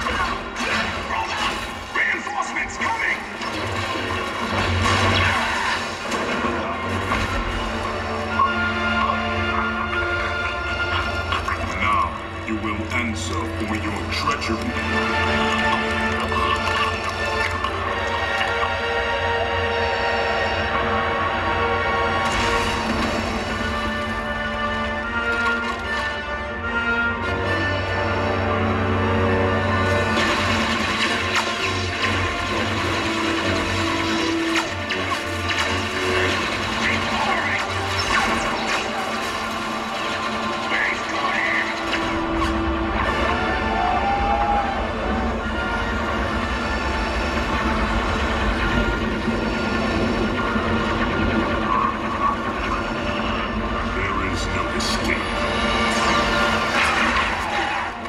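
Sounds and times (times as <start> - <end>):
film soundtrack music with held tones: 0.0 - 58.0.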